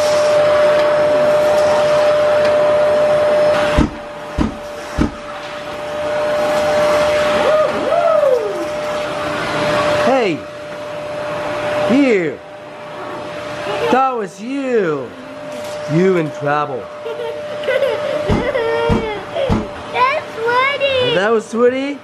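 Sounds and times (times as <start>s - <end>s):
vacuum cleaner running on rug: 0.0s - 22.0s
low thumps: 3.7s - 5.3s.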